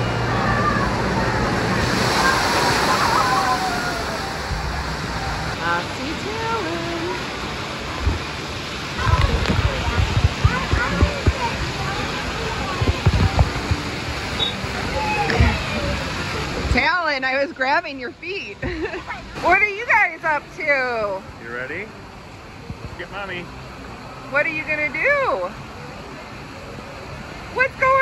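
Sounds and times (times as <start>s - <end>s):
pouring and spraying water: 0.0s - 18.0s
children's voices: 0.1s - 4.2s, 8.9s - 13.8s
water crashing from bucket: 1.5s - 4.7s.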